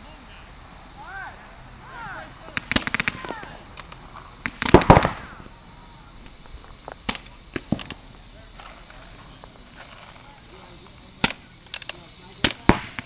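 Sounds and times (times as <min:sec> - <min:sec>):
paintball markers firing: 0:02.5 - 0:05.5, 0:07.0 - 0:08.0, 0:11.2 - 0:13.0.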